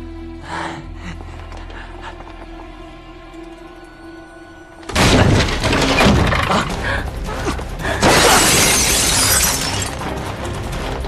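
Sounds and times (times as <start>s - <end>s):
window glass shattering: 4.9s - 6.5s, 8.0s - 10.0s.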